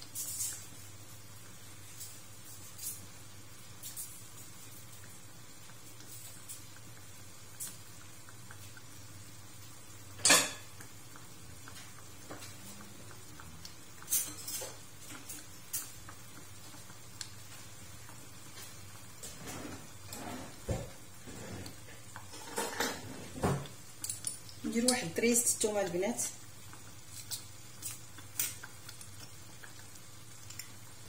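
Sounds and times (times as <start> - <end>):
kitchenware clinking and knocking: 22.3 - 23.7.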